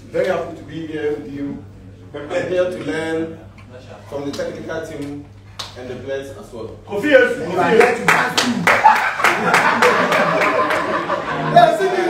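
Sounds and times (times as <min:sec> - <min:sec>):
people clapping a steady beat: 0:07.7 - 0:11.3.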